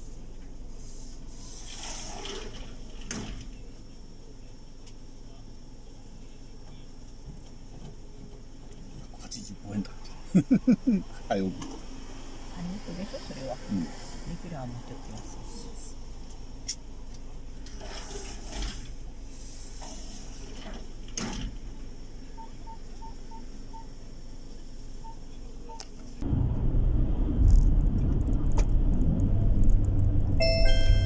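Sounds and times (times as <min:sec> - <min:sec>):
car idle hum: 0:03.6 - 0:12.0
car driving rumble: 0:23.6 - 0:31.0
short electronic chime: 0:30.4 - 0:31.0.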